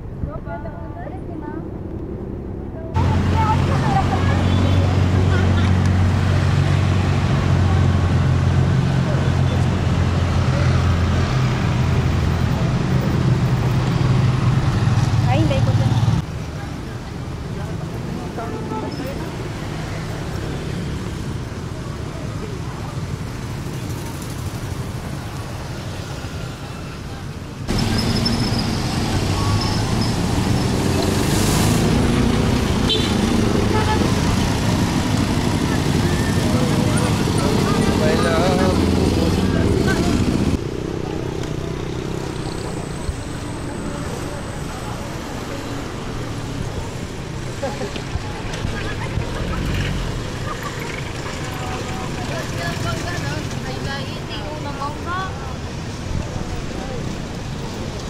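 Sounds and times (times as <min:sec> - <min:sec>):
people's voices: 0:00.0 - 0:13.2, 0:15.0 - 0:58.0
vehicles and motorcycles passing: 0:00.0 - 0:58.0.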